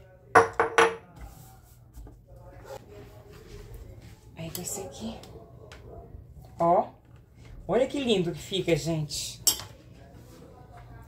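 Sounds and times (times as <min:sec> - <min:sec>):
plate knocking on wooden board: 0:00.4 - 0:01.0.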